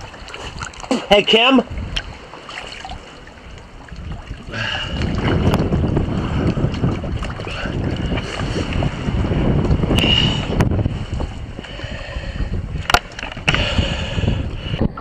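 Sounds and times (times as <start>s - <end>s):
water churning underwater: 0.0s - 15.0s.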